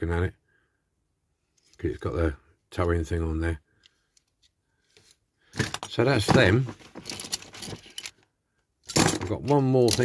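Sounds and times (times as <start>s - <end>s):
man speaking: 0.0s - 0.4s, 1.8s - 3.6s, 5.8s - 6.8s, 9.2s - 10.0s
clicks of metal toy vehicles: 8.8s - 10.0s.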